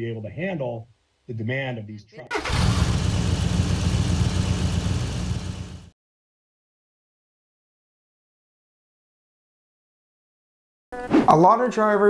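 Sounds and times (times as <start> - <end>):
large engine rumbling: 2.4 - 5.9.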